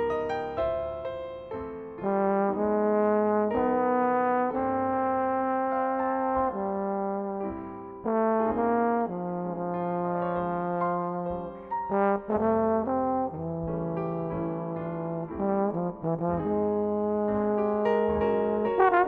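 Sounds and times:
soft piano accompaniment: 0:00.0 - 0:19.0
trombone playing jazz ballad: 0:02.0 - 0:19.0.

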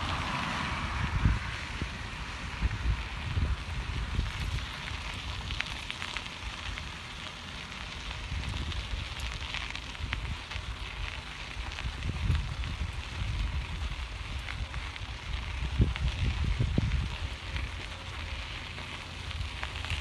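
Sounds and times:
wind buffeting microphone: 0:00.0 - 0:06.9, 0:07.9 - 0:18.6
bicycle tyres on gravel: 0:00.0 - 0:20.0.

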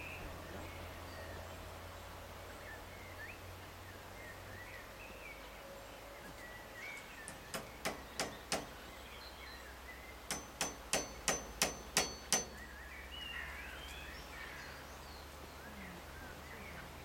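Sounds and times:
birds chirping and calling: 0:00.0 - 0:17.0
sharp metallic clangs ringing: 0:10.3 - 0:12.7.

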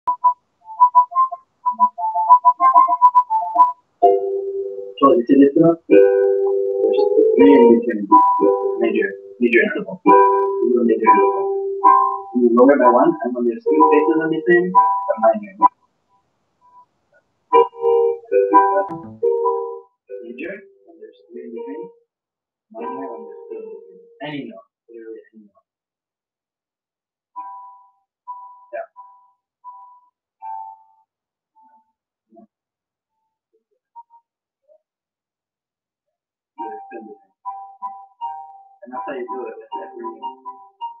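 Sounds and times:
keyboard chords: 0:00.2 - 0:15.7, 0:17.5 - 0:21.9, 0:22.8 - 0:24.4, 0:29.8 - 0:31.0, 0:36.6 - 0:41.0
short electronic notes: 0:17.6 - 0:19.8.

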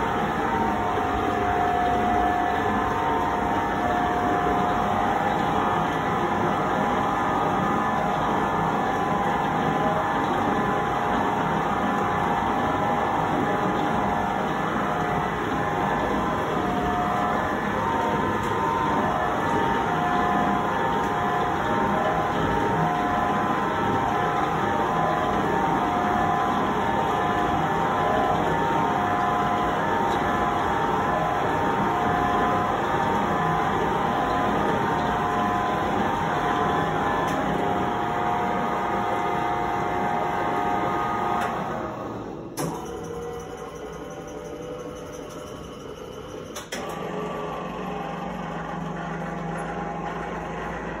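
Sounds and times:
dough mixer whining: 0:00.0 - 0:51.0
quieter motor running: 0:00.0 - 0:51.0.

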